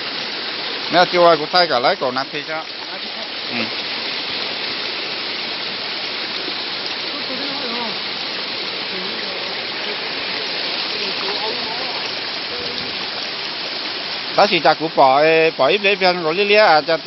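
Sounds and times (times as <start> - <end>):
stream rushing over rocks: 0.0 - 17.0.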